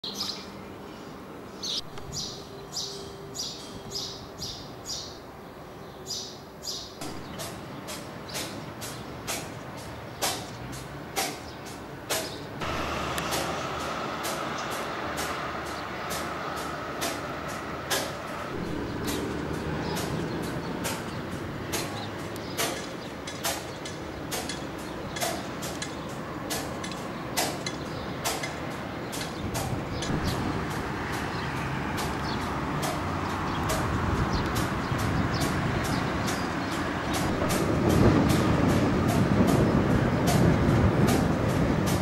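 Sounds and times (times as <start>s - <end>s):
distant road traffic: 0.0s - 42.0s.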